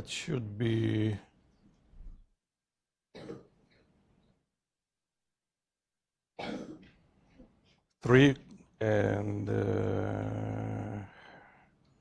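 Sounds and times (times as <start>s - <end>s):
man clearing his throat: 3.1s - 3.6s, 6.4s - 7.0s.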